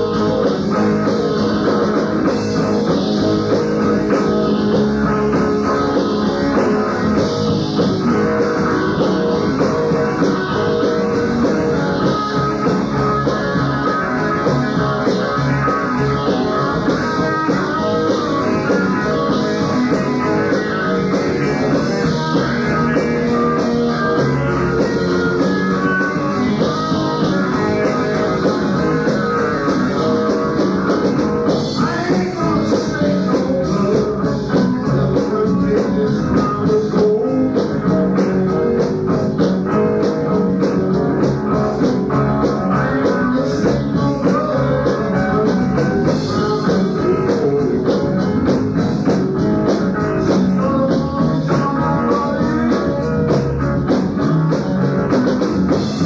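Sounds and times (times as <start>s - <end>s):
electric guitar: 0.0s - 56.0s
live rock band: 0.0s - 56.0s.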